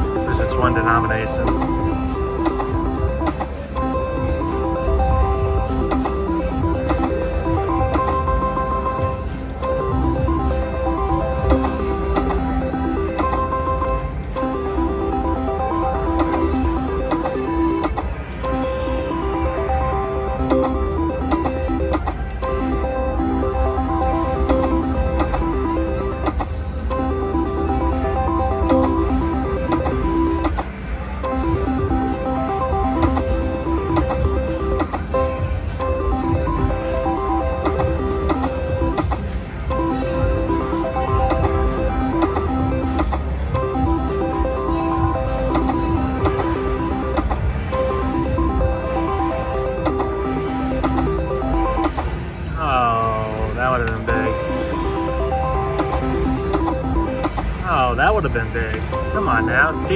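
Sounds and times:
low casino rumble: 0.0s - 59.9s
slot machine beeping tunes: 0.0s - 59.9s.

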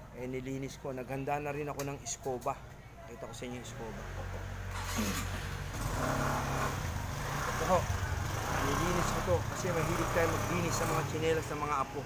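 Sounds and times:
vehicle engine humming: 4.2s - 12.0s.

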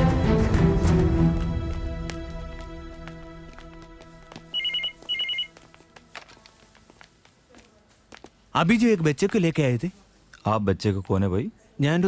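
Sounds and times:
background music: 0.0s - 6.2s
telephone double ring: 4.6s - 5.5s.

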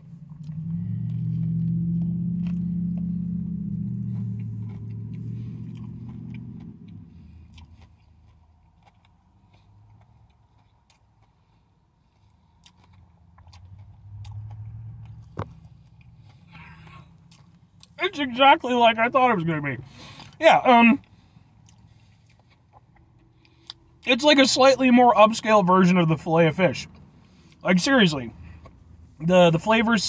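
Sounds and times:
low drone: 0.0s - 7.6s
crunchy chewing: 0.2s - 18.0s, 21.0s - 24.1s.

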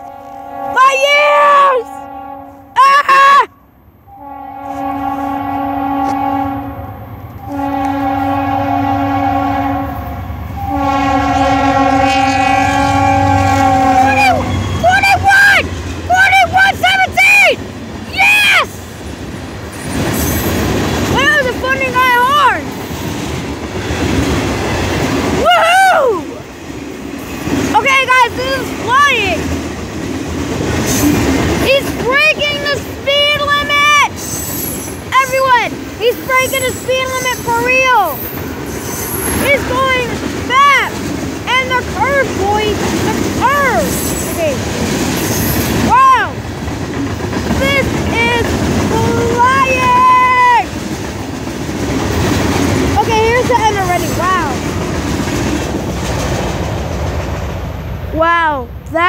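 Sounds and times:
locomotive air horn blasts: 0.0s - 3.1s, 4.1s - 14.8s
train cars rumbling: 0.0s - 59.0s
train wheel screeches: 19.7s - 20.8s, 34.1s - 40.1s, 42.9s - 45.9s.

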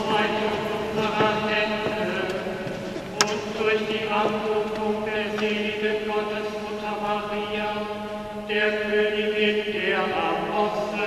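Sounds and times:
man chanting a prayer: 0.0s - 2.5s, 3.1s - 11.0s.

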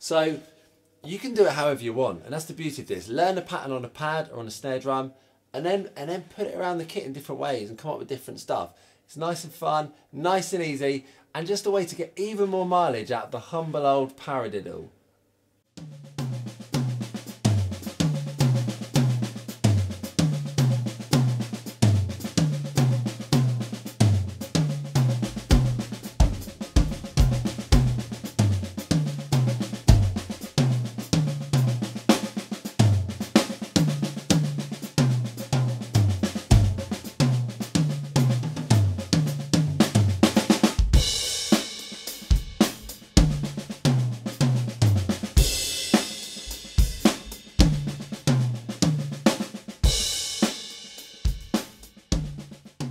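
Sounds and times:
bass drum: 15.8s - 50.5s, 51.3s - 52.9s
drum fills on toms: 15.8s - 52.9s.

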